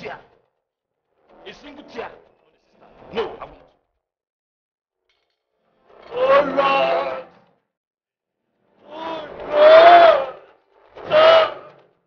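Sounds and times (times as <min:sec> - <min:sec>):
man wailing and crying out: 0:06.1 - 0:07.3.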